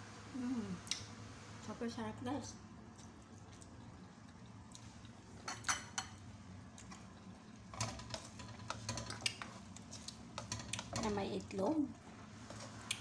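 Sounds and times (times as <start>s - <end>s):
metal spoon scraping a frying pan: 7.7s - 9.6s.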